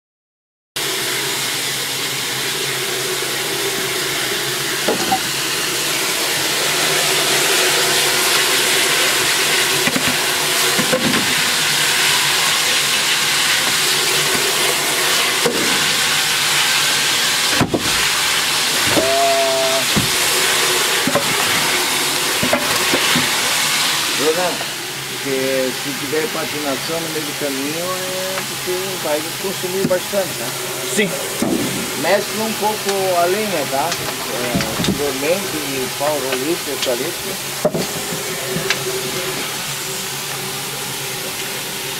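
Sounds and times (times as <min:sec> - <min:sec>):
fire roaring in firebox: 0:00.8 - 0:41.9.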